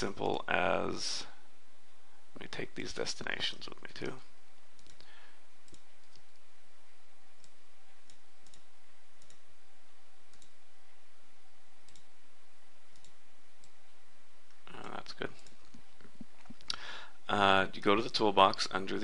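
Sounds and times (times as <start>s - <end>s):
steady background hiss: 0.0s - 19.0s
computer mouse clicks: 4.8s - 6.4s, 7.4s - 9.4s, 10.3s - 10.6s, 11.8s - 12.1s, 12.9s - 13.8s, 15.4s - 15.8s.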